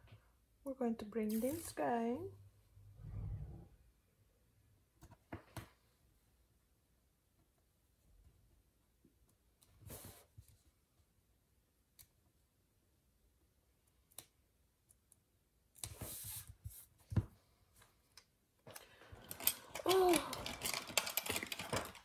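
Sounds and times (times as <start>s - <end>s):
clicking and rattling: 18.7s - 22.0s
plastic items handled: 18.7s - 22.0s
handling stickers and paper: 19.4s - 22.0s.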